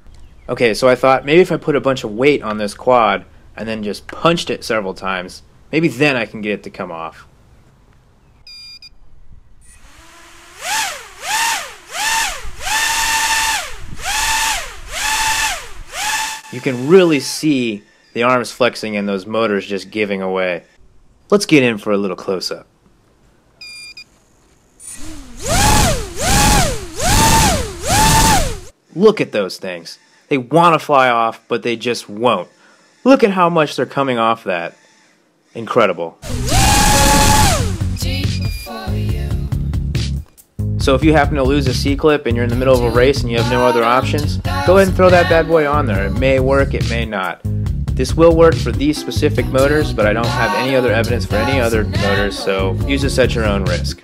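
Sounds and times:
quadcopter motors whining: 0:09.6 - 0:17.4, 0:24.8 - 0:28.7, 0:36.2 - 0:38.7
rushing propeller wash: 0:10.0 - 0:16.9, 0:25.0 - 0:28.7, 0:36.2 - 0:38.0.

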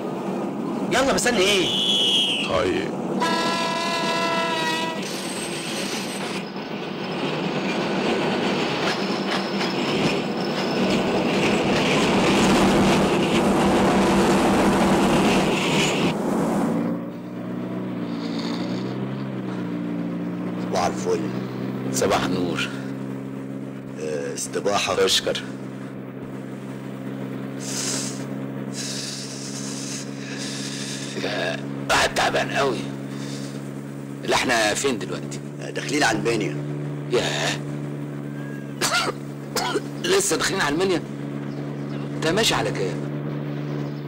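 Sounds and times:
train running: 0:00.0 - 0:18.9, 0:22.0 - 0:43.0
vehicle engine humming: 0:00.0 - 0:44.0
train horn: 0:03.2 - 0:05.2.

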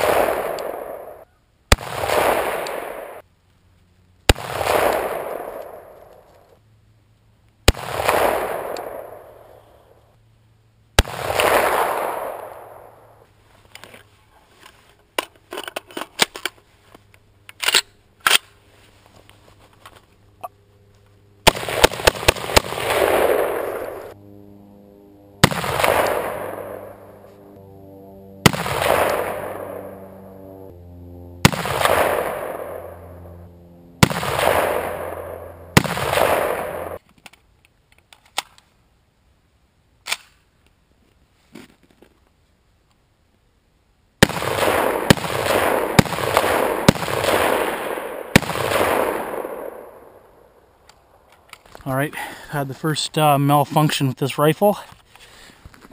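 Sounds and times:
rifle shots: 0:00.0 - 0:03.2, 0:04.3 - 0:06.1, 0:07.7 - 0:09.4, 0:11.0 - 0:12.9, 0:21.4 - 0:24.2, 0:25.4 - 0:27.3, 0:28.4 - 0:30.0, 0:31.4 - 0:33.2, 0:34.0 - 0:37.0, 0:44.2 - 0:50.3.

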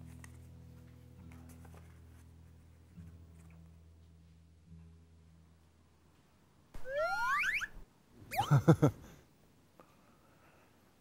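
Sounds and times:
rising whistle-like glides: 0:06.8 - 0:07.8.

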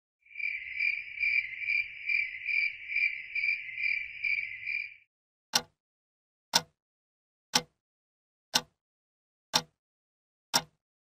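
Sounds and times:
cricket chirping: 0:00.2 - 0:05.0.

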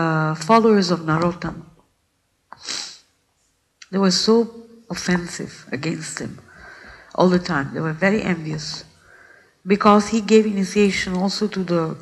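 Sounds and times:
person making sharp breathy noise: 0:02.6 - 0:03.1.

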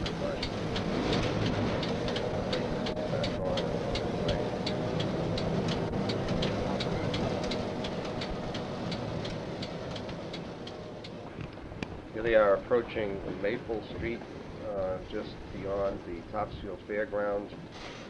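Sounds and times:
regular clicking of wheels: 0:00.0 - 0:12.1
diesel rail car engine rumble: 0:00.0 - 0:18.0.

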